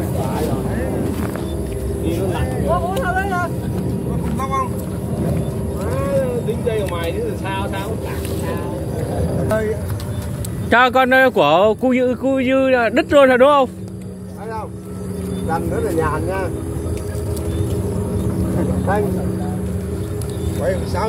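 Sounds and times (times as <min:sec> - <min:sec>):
constant low hum: 0:00.0 - 0:21.0
steady low rumble: 0:00.0 - 0:21.0.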